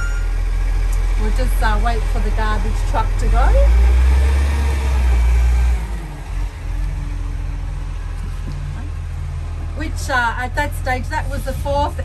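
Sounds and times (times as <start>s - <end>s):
garbage truck engine rumbling: 0.0s - 12.0s.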